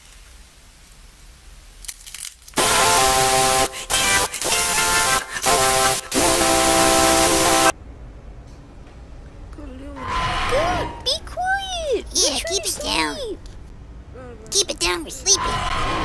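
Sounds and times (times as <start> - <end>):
buzzing horn-like chord: 2.6 - 7.7
harsh glitch static: 2.6 - 7.7.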